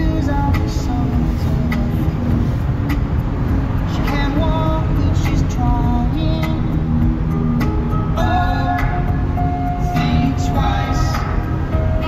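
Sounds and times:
car road and engine rumble: 0:00.0 - 0:12.0
music with melody and beat: 0:00.0 - 0:12.0.

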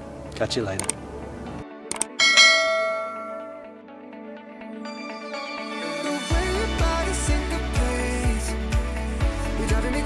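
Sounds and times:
notification bell chime: 0:02.2 - 0:03.7.

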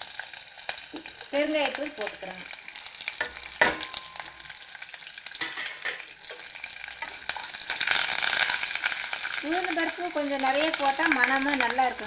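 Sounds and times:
spices sizzling in hot oil: 0:00.0 - 0:12.0.

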